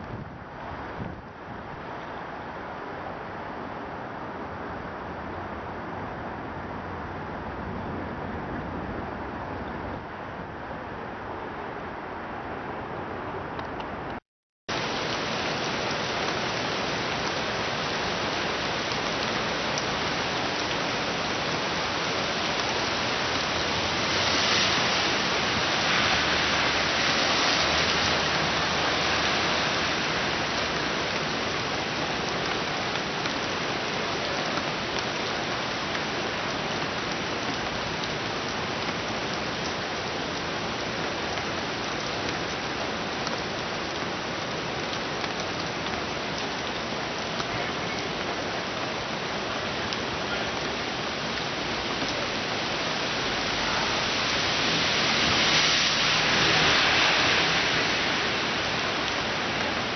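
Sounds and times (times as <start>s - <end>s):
rushing water: 0.0s - 59.9s.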